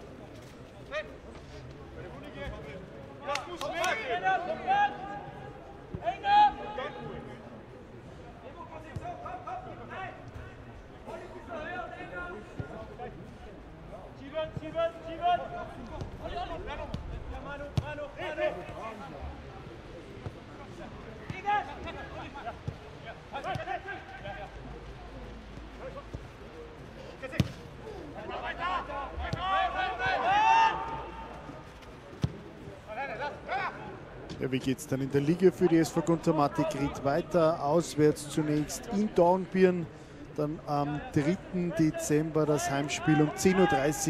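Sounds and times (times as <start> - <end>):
players shouting: 27.2 - 31.7, 40.8 - 44.0
ball kicked thud: 27.3 - 27.7.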